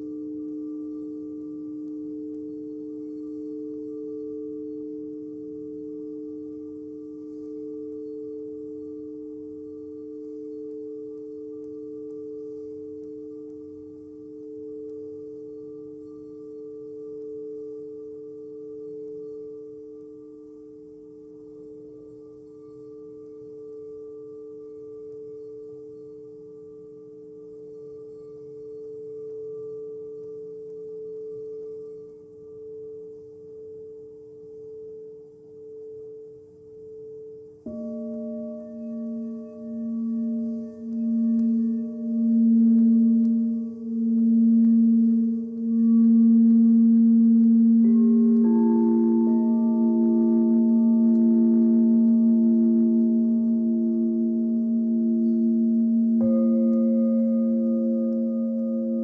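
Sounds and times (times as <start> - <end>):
singing bowls ringing: 0.0 - 59.0.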